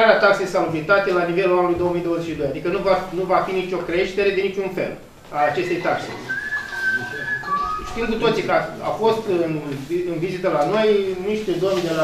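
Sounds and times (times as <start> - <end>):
high whistling tone: 5.6 - 8.4.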